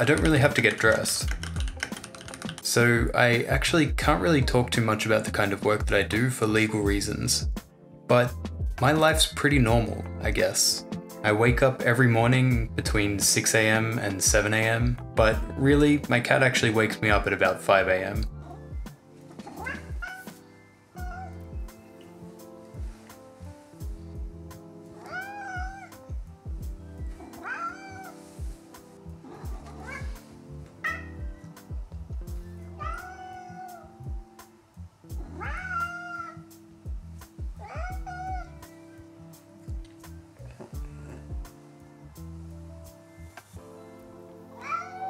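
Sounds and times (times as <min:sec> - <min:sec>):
background music: 0:00.0 - 0:45.0
cat meowing: 0:18.4 - 0:21.5, 0:24.9 - 0:26.0, 0:27.2 - 0:28.2, 0:29.3 - 0:31.4, 0:32.6 - 0:34.0, 0:35.2 - 0:36.5, 0:37.6 - 0:38.7, 0:44.5 - 0:45.0.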